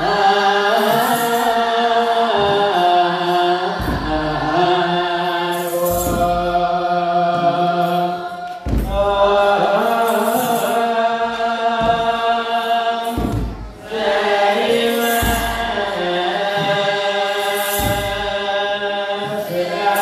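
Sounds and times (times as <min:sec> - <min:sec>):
jingle of shaken sistra: 0:00.0 - 0:20.0
male choir chanting in unison: 0:00.0 - 0:20.0
low drum strokes: 0:03.7 - 0:04.9, 0:05.9 - 0:12.4, 0:13.0 - 0:18.6.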